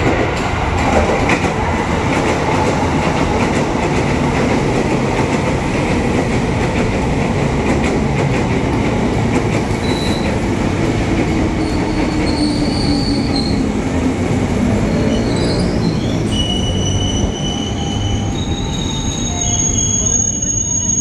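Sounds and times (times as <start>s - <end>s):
train wheels rumbling on rails: 0.0s - 21.0s
high-pitched wheel squeal: 15.0s - 21.0s.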